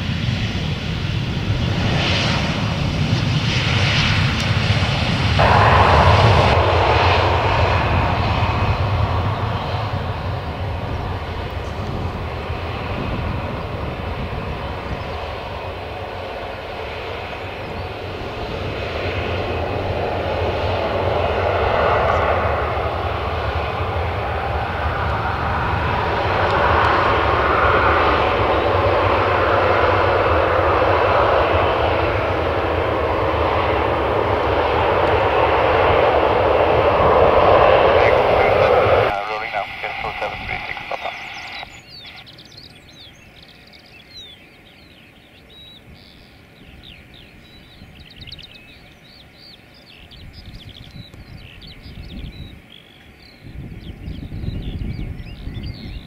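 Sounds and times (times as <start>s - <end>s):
wind buffeting microphone: 0.0s - 43.4s, 49.9s - 56.0s
jet engines at takeoff power: 0.0s - 56.0s.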